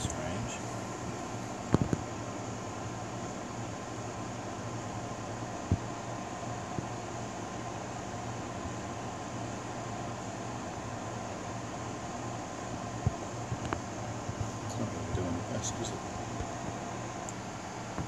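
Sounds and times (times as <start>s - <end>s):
fan humming with hiss: 0.0s - 18.0s.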